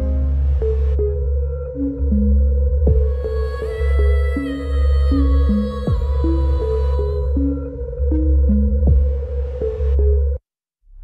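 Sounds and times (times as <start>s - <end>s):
deep steady bass: 0.0s - 11.0s.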